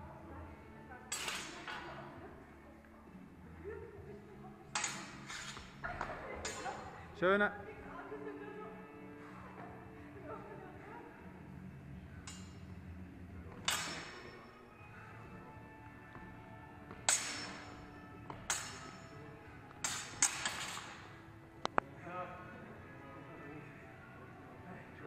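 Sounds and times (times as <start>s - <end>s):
steel swords clashing: 4.8s - 5.7s, 13.6s - 14.6s, 17.0s - 19.2s, 19.8s - 21.0s.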